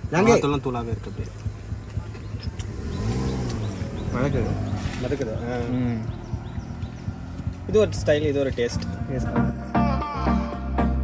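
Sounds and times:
vehicle engine passing: 0:00.0 - 0:09.6.

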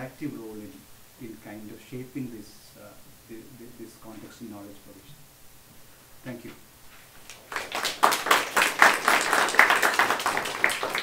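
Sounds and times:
audience applauding: 0:07.2 - 0:11.0.

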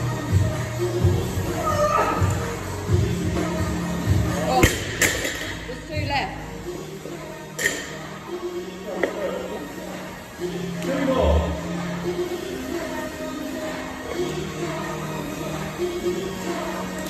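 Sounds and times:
background music with vocals: 0:00.0 - 0:17.0.

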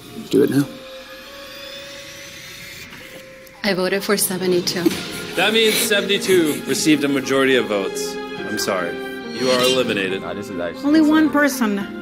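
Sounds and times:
high tones rising in pitch: 0:09.2 - 0:10.4.

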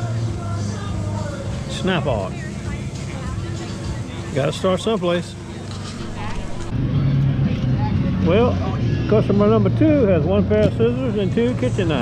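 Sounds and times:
faint voices: 0:05.3 - 0:09.4.

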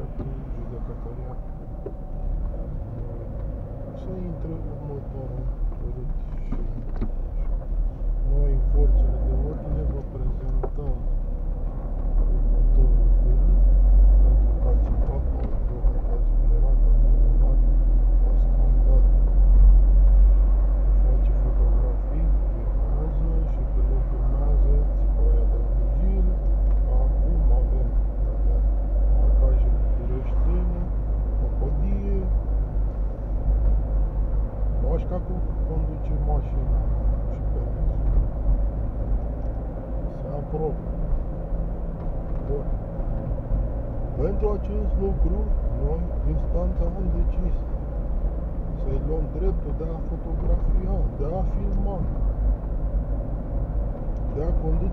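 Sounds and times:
car engine and road rumble: 0:00.0 - 0:54.9.

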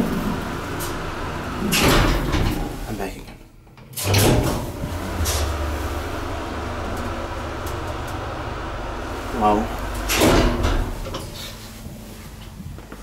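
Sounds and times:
elevator machine clunk: 0:00.0 - 0:11.6
elevator low hum: 0:00.0 - 0:13.0.

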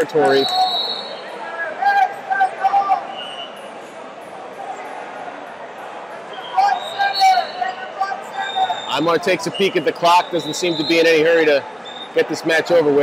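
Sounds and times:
voices calling out: 0:00.0 - 0:12.8
murmur of room noise: 0:00.0 - 0:13.0.

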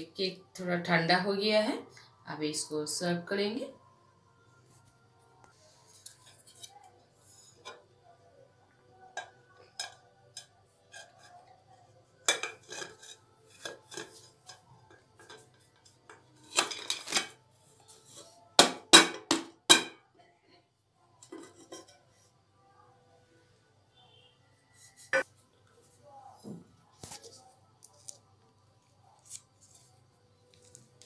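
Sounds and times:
plate scraping metal tin: 0:12.3 - 0:14.6
knocks on metal tin: 0:18.6 - 0:20.0.

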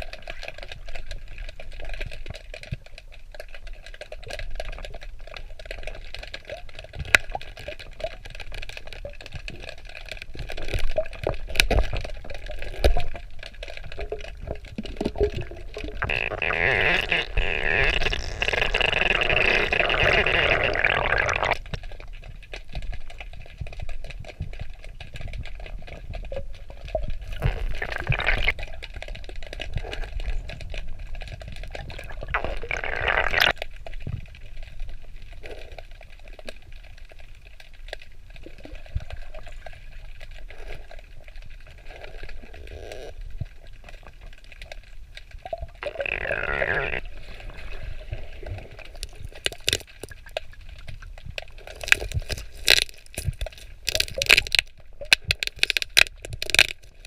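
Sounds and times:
air bubbles underwater: 0:00.0 - 0:57.0
muffled underwater rumble: 0:00.0 - 0:57.0.

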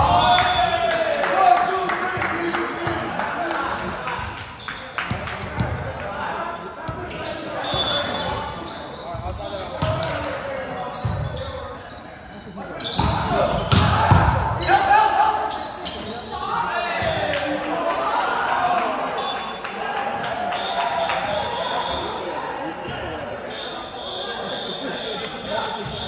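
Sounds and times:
volleyball hits and bounces: 0:13.0 - 0:14.6.

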